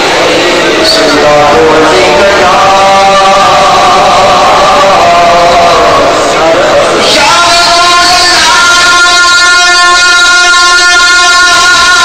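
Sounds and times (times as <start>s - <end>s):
man singing a long held note: 0.0s - 12.0s.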